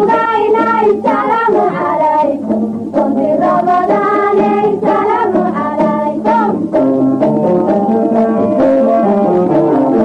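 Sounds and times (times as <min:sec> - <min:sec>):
instrumental accompaniment: 0:00.0 - 0:10.0
person singing melodically: 0:00.0 - 0:10.0.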